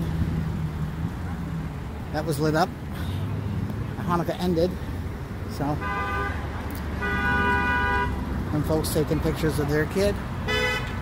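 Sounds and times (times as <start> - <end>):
car engines passing: 0.0 - 11.0.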